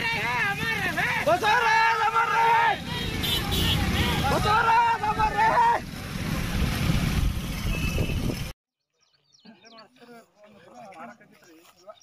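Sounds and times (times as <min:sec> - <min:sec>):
riders shouting a slogan: 0:00.0 - 0:05.9
many motorcycles rumbling: 0:00.0 - 0:08.5.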